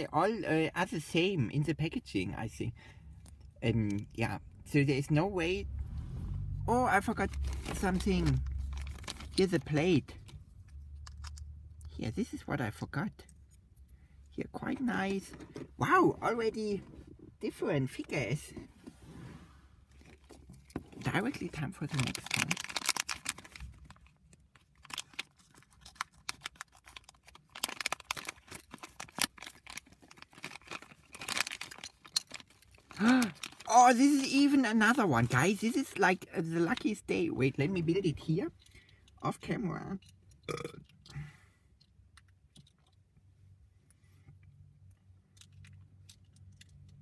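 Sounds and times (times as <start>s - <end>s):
low steady hum: 0.0s - 47.0s
plastic pieces clicking and rustling: 21.8s - 33.8s.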